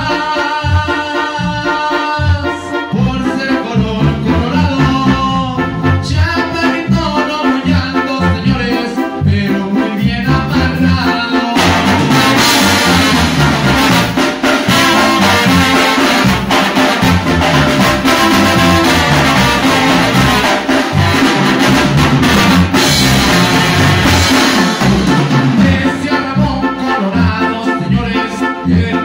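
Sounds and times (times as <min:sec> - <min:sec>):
keyboard: 0:00.0 - 0:29.0
live band playing: 0:00.0 - 0:29.0
trombone: 0:00.0 - 0:29.0
trumpet: 0:00.0 - 0:29.0
drum kit with cymbals: 0:11.1 - 0:26.5.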